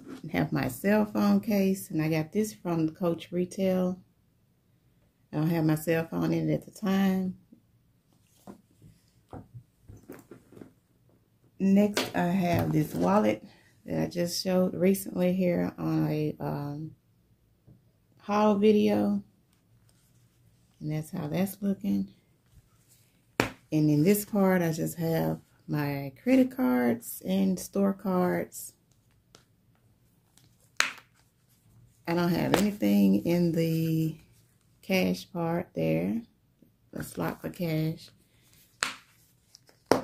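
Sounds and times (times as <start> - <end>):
soft taps and rustles of handbag: 8.1 - 10.8
wallet handling: 30.2 - 31.6, 38.4 - 40.0.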